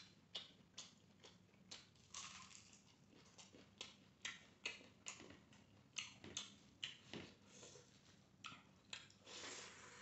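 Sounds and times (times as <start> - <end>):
man chewing food: 0.0 - 10.0.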